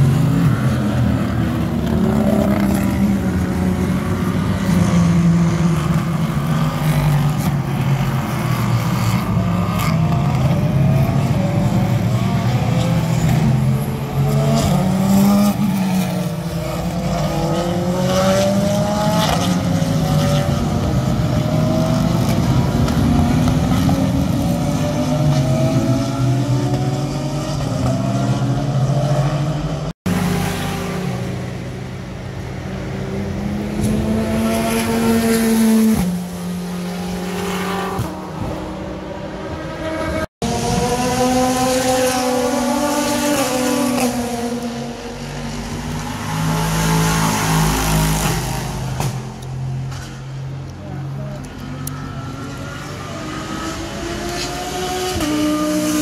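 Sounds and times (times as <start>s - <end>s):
race car engines at high revs: 0.0s - 56.0s.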